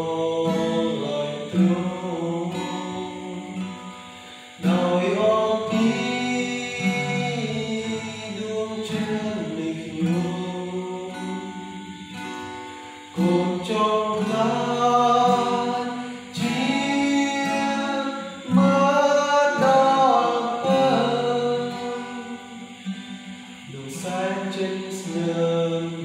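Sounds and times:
man singing: 0:00.0 - 0:03.7, 0:04.6 - 0:11.9, 0:13.2 - 0:22.8, 0:23.6 - 0:26.0
acoustic guitar strummed: 0:00.0 - 0:26.0.

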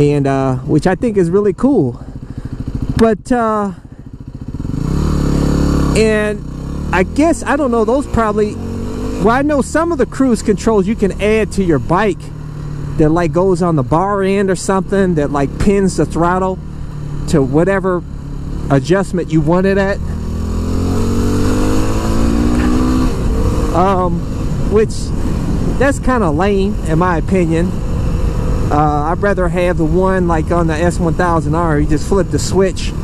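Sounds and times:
motorcycle engine accelerating: 0:00.0 - 0:33.0
wind noise: 0:21.0 - 0:33.0.

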